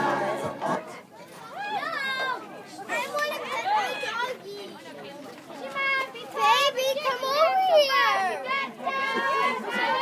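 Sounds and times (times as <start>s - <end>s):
children shouting: 0.0s - 4.4s, 6.3s - 10.0s.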